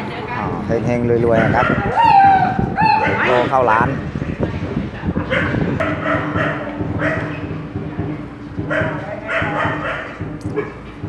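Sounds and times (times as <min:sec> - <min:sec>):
dog barking: 0:01.3 - 0:03.4, 0:05.3 - 0:07.4, 0:08.7 - 0:10.8.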